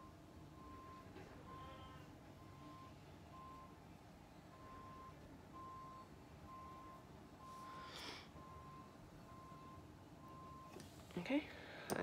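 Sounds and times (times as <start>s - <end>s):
faint electronic beeping: 0.0s - 11.4s.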